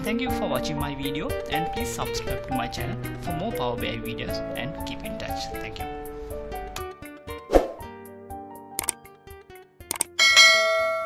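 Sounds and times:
mouse clicks: 0:09.9 - 0:10.2
bright bell chime: 0:10.2 - 0:11.0.

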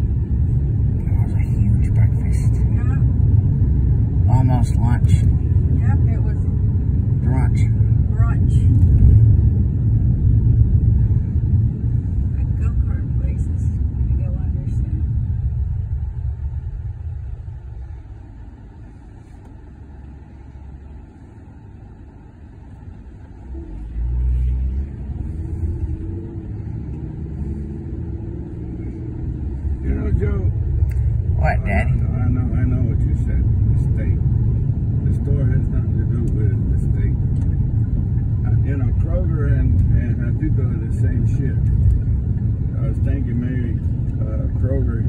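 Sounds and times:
car engine and road rumble: 0:00.0 - 0:45.0.

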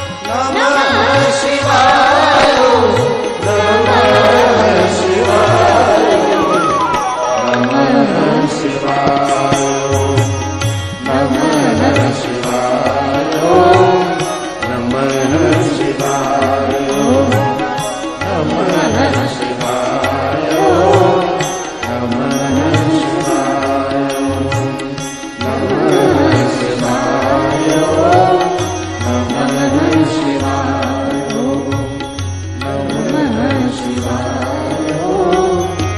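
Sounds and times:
chanted mantra singing: 0:00.0 - 0:35.9.

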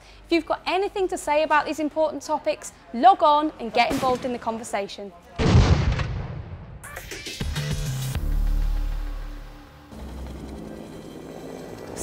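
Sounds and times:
helicopter engine and rotor drone: 0:09.8 - 0:12.0.

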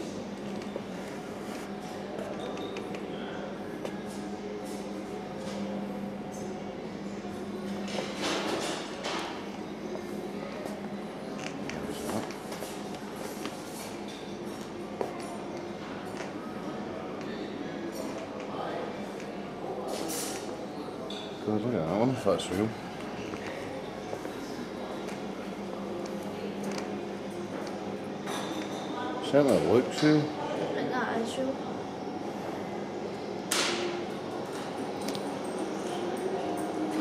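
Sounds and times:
steady low hum: 0:00.0 - 0:29.2
faint voices: 0:09.2 - 0:37.0.

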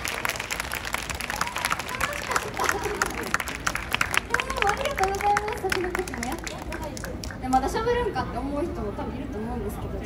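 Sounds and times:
audience applause: 0:00.0 - 0:07.4.

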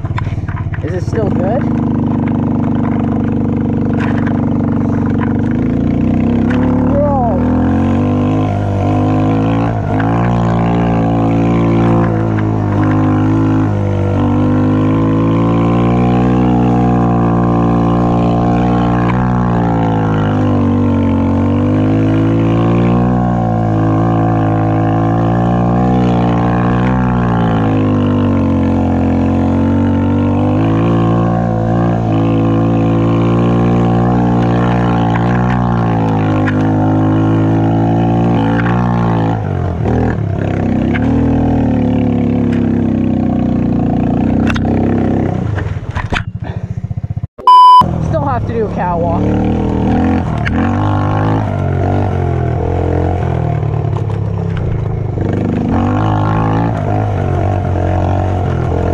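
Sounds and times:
quad bike engine revving: 0:00.0 - 0:58.9.

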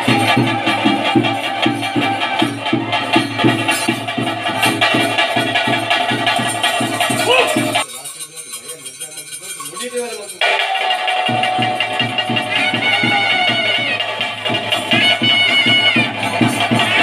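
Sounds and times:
drums beating steady rhythm: 0:00.0 - 0:17.0
nadaswaram wavering notes: 0:10.4 - 0:17.0.

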